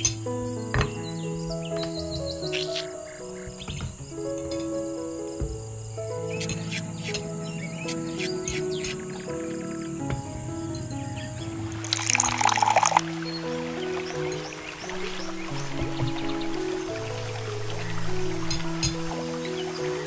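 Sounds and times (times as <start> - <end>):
music of held notes: 0.0 - 20.0.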